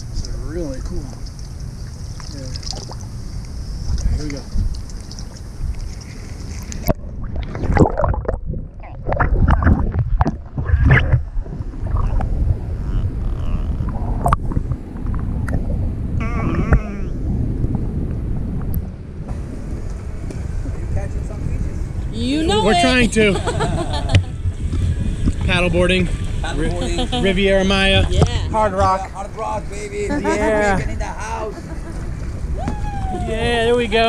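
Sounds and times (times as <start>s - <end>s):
water splashing on camera: 0.0s - 21.0s
short voice-like call: 16.2s - 17.2s.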